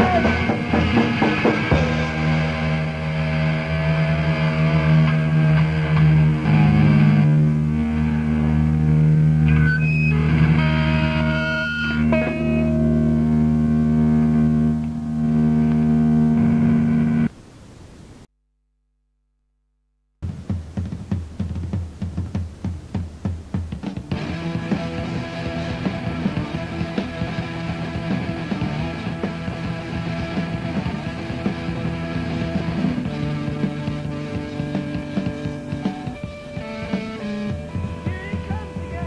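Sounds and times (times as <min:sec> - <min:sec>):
distorted electric guitar chord: 0:00.0 - 0:17.3, 0:24.1 - 0:39.0.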